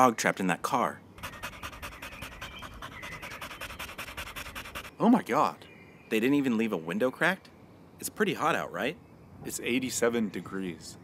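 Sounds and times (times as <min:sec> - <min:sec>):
dog panting fast: 0:01.2 - 0:05.0.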